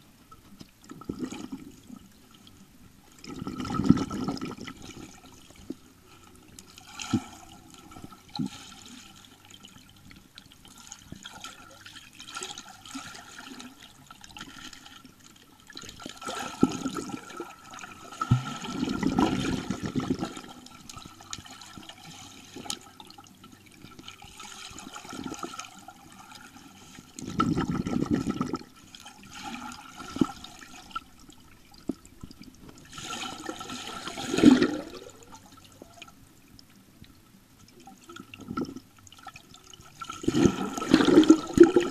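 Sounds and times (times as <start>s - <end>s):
muffled underwater rushing and bubbling: 0.0s - 36.4s, 37.4s - 41.9s
faint steady tone: 0.0s - 41.9s.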